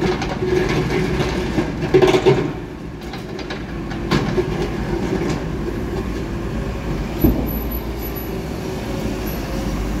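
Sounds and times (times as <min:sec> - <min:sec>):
backhoe loader engine: 0:00.0 - 0:10.0
bus passing: 0:04.8 - 0:10.0
thump: 0:07.2 - 0:07.6.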